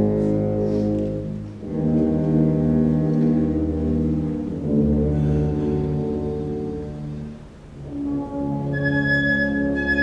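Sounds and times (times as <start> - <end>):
wind band playing chords: 0.0 - 10.0.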